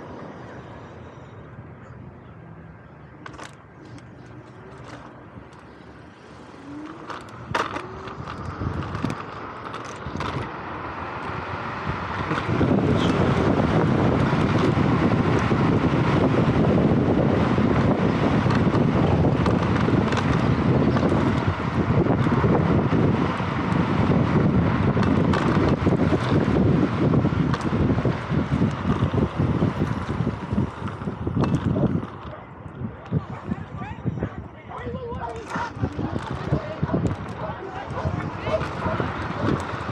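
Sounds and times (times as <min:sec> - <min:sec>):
wind buffeting microphone: 0:03.2 - 0:39.9.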